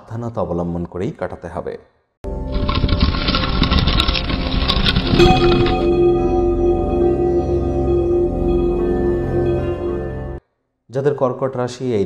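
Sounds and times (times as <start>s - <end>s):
ringing tones: 4.7s - 10.4s.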